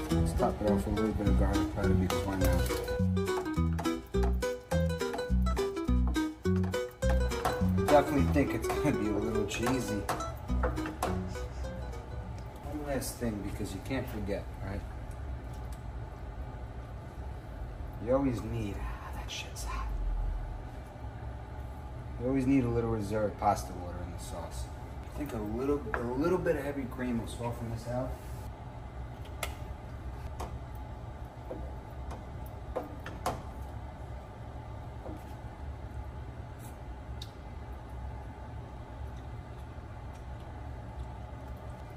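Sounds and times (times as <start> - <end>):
steady low hum: 0.0 - 41.9.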